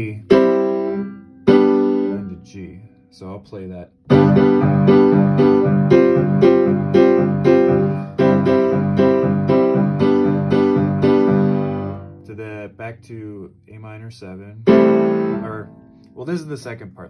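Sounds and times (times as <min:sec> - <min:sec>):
piano playing repeated chords: 0:00.0 - 0:03.2, 0:04.0 - 0:12.7, 0:14.6 - 0:16.5.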